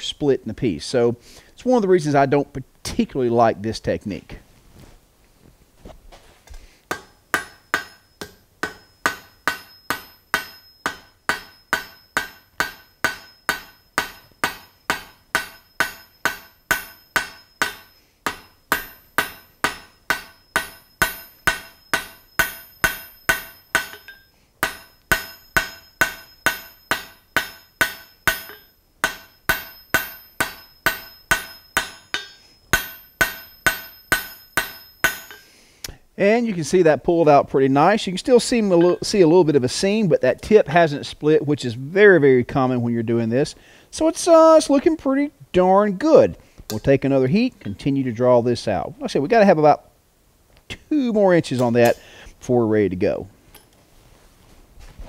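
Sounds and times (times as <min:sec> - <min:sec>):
hammer striking iron on anvil: 0:06.9 - 0:35.5.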